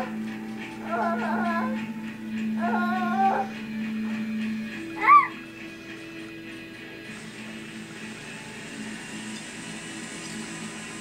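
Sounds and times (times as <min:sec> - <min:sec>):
steady held background tones: 0:00.0 - 0:11.0.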